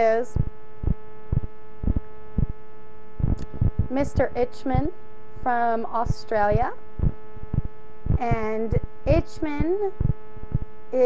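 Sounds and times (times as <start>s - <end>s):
low thumps: 0.0s - 5.1s, 5.8s - 11.0s
electrical mains hum: 0.0s - 11.0s.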